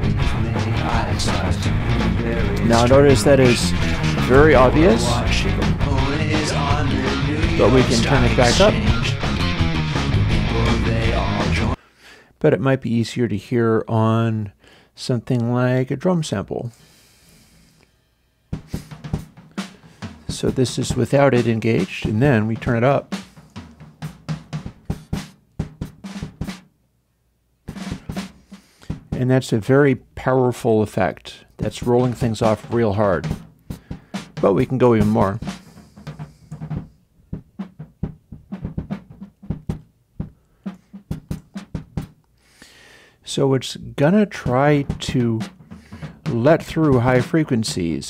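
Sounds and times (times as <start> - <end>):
drum kit kick and snare: 0.0 - 11.8, 18.6 - 26.7, 27.7 - 29.4, 31.6 - 42.2, 44.3 - 48.0.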